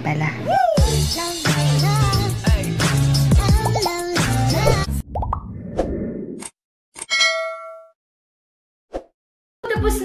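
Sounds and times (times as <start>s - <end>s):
bright bell-like ding: 7.1s - 7.9s.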